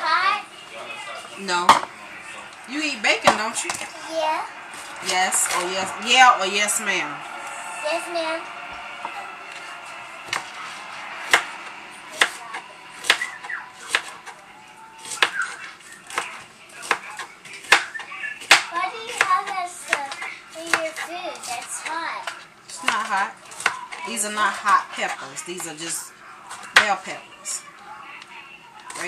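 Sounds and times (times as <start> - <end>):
voices talking: 0.0 - 29.0
knife chopping on cutting board: 11.2 - 14.3, 15.0 - 23.8.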